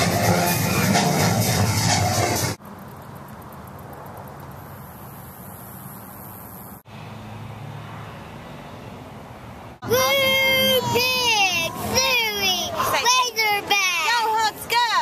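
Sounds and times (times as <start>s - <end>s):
music from parade float: 0.0s - 2.6s
truck engine driving past: 0.0s - 9.8s
faint outdoor hiss: 2.6s - 6.9s.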